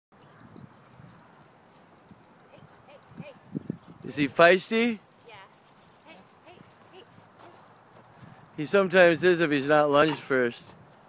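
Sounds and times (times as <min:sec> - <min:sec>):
horse hoofbeats on grass: 0:00.6 - 0:09.0
hoof thuds: 0:05.2 - 0:08.6.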